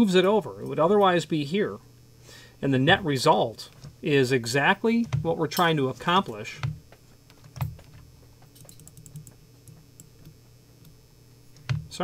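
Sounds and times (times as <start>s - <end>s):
low steady hum: 0.0s - 12.0s
keyboard and mouse clicks: 6.6s - 11.0s, 11.6s - 11.9s.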